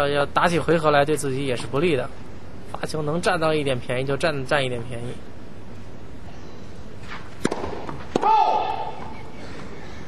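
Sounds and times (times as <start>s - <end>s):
steady background noise: 0.0s - 10.0s
racket hitting tennis ball: 7.0s - 9.1s.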